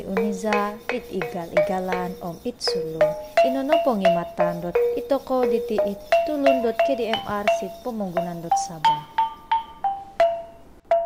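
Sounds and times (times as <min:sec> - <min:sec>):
mallet percussion notes: 0:00.0 - 0:11.0.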